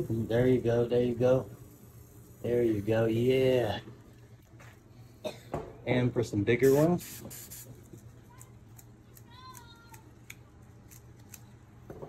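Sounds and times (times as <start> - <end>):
spray paint can spurts: 6.6 - 8.9.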